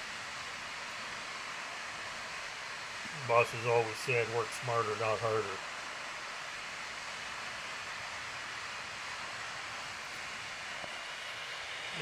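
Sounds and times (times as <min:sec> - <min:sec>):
steady rushing noise: 0:00.0 - 0:12.0.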